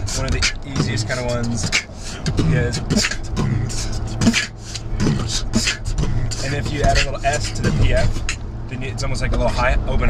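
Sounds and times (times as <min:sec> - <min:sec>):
beatboxing snare sounds: 0:00.0 - 0:08.4
car cabin hum: 0:00.0 - 0:10.0.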